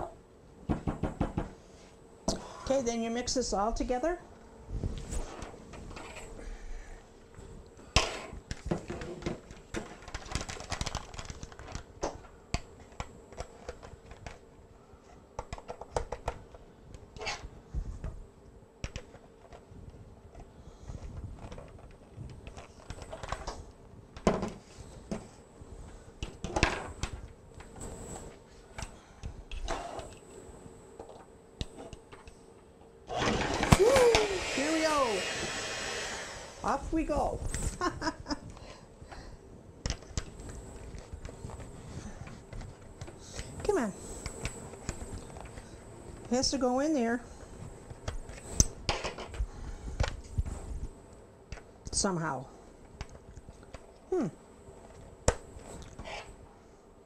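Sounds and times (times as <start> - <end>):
hand mixer motor running: 33.1 - 36.8.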